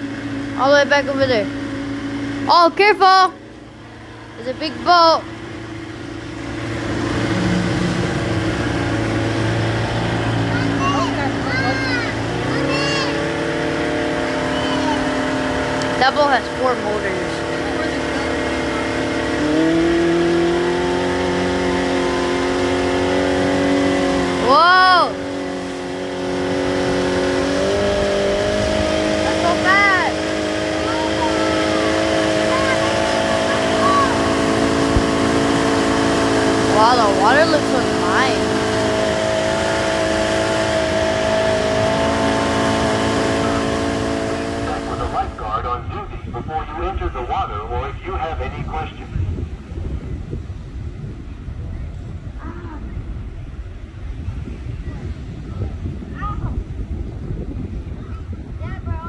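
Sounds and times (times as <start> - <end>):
wind and water hiss: 0.0 - 47.3
motorboat engine running: 0.0 - 59.0.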